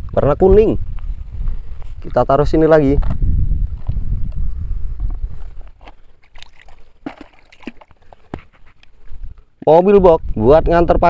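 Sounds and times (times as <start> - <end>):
river water sloshing: 5.8 - 9.2.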